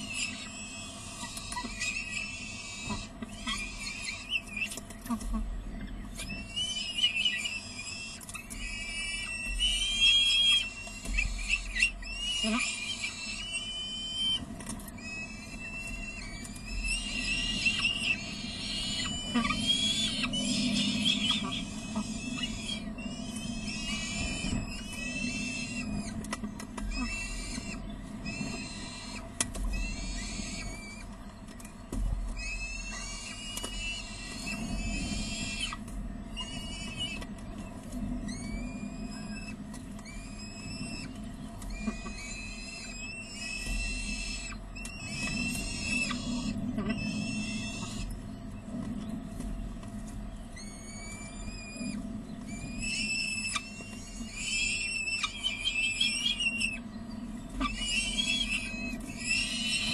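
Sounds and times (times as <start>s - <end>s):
falcon chicks shrill begging calls: 0.0s - 31.2s, 32.3s - 37.3s, 38.2s - 48.2s, 50.5s - 59.9s
low hum: 0.0s - 59.9s.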